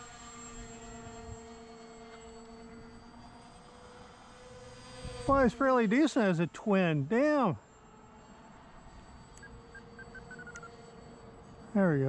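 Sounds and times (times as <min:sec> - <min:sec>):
distant electric motors whining: 0:00.0 - 0:12.0
high electronic beeps: 0:09.4 - 0:10.8.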